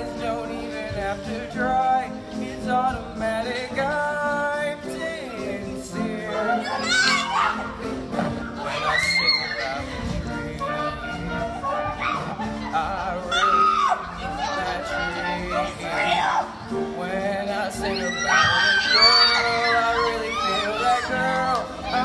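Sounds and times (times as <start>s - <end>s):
band accompaniment: 0.0s - 22.0s
young voices singing: 0.0s - 22.0s
high rising cries: 8.6s - 10.0s, 17.8s - 22.0s.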